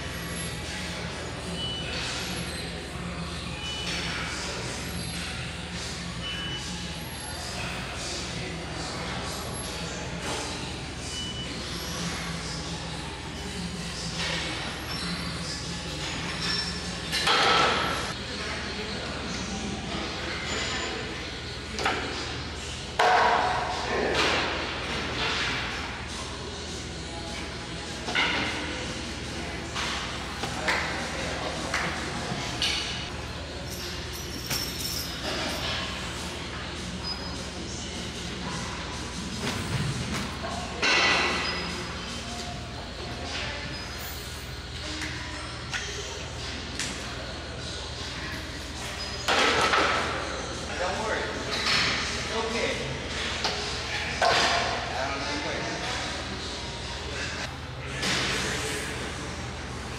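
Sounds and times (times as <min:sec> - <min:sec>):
background chatter: 0:00.0 - 0:59.9.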